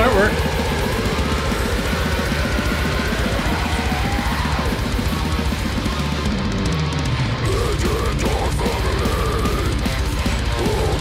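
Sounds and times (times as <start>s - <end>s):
death metal band playing: 0.0s - 11.0s
fast dense drumming: 0.0s - 11.0s
guitar line: 0.0s - 11.0s.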